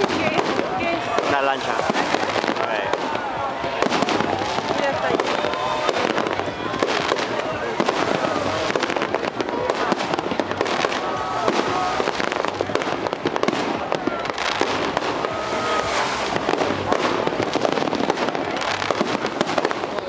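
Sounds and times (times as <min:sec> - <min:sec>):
fireworks bangs and crackling: 0:00.0 - 0:20.0.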